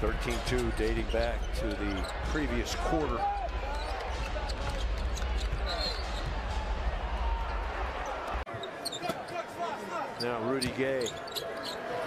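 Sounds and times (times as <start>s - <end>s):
crowd noise: 0.0s - 12.0s
shoe squeaks: 8.5s - 9.4s, 10.2s - 12.0s.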